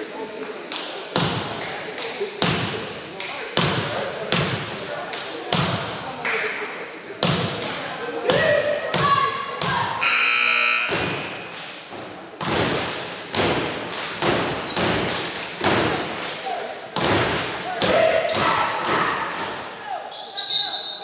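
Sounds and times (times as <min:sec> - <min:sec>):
rhythmic stomps and claps: 0:00.7 - 0:06.6, 0:07.2 - 0:10.0, 0:10.9 - 0:19.7.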